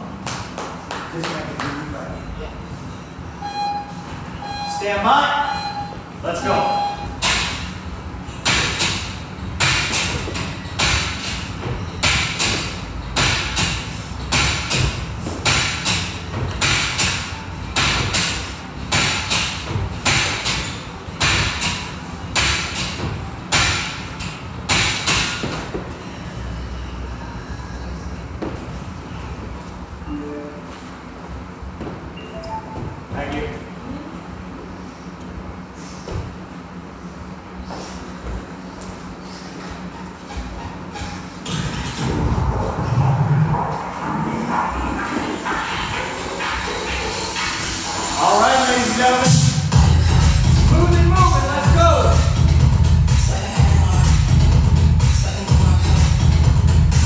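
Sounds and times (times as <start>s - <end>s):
gym room noise: 0.0s - 57.0s.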